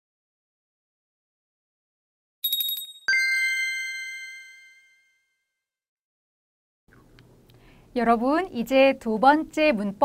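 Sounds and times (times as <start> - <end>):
bright ringing ding: 2.4 - 5.2.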